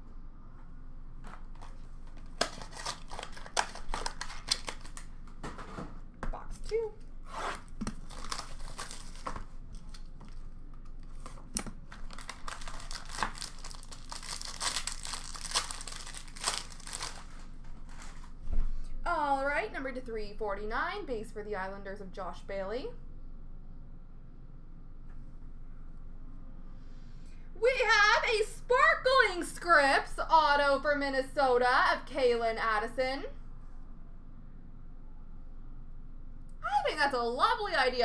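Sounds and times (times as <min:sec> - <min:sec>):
plastic shrink-wrap crinkling: 0:01.5 - 0:05.4, 0:07.6 - 0:18.4.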